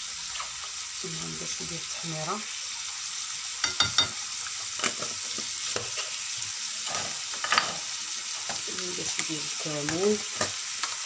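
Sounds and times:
meat and onion sizzling in pan: 0:00.0 - 0:11.0
utensils knocking against pan: 0:03.6 - 0:04.2.

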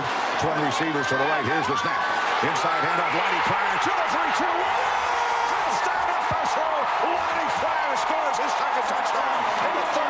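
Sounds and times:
crowd roar: 0:00.0 - 0:10.0.

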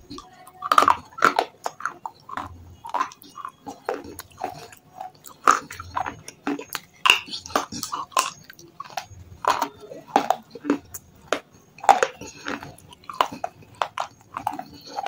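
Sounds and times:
chewing stone cracks and crunches: 0:00.0 - 0:15.0.

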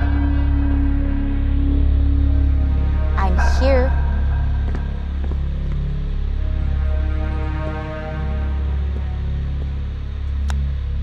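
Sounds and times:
film score music with bass drone: 0:00.0 - 0:11.0.

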